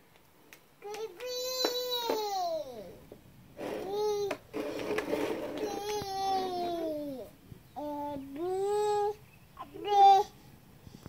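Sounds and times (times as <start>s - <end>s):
baby babbling: 3.8s - 4.4s, 5.6s - 10.4s.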